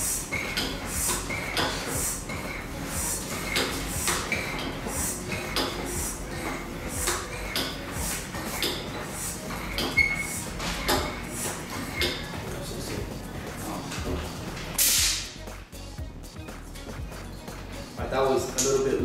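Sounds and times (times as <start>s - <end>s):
hand air pump strokes: 0.0s - 13.0s.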